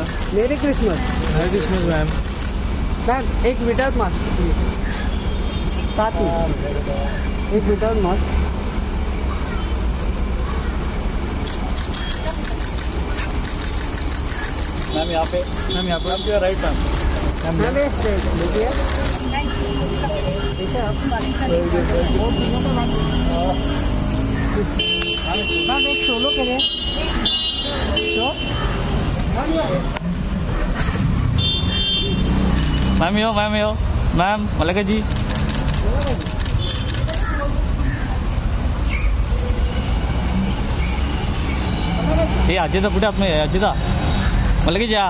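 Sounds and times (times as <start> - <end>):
camera shutters clicking: 0.0 - 2.6, 11.4 - 19.2, 32.5 - 33.1, 35.0 - 37.3
street traffic: 0.0 - 45.0
vehicle engine running: 10.9 - 25.4, 32.2 - 39.1.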